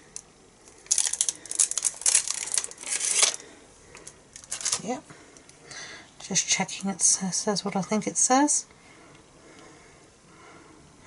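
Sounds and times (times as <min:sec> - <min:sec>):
plastic crinkling: 0:00.6 - 0:05.0.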